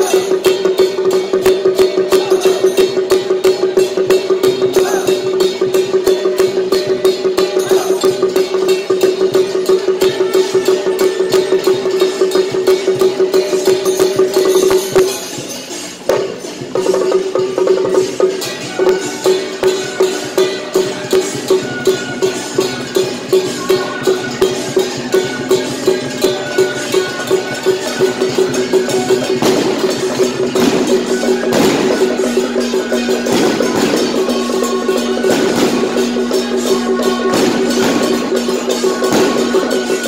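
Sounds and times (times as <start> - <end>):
drum beating: 0.0 - 40.0
gongs ringing: 0.0 - 40.0.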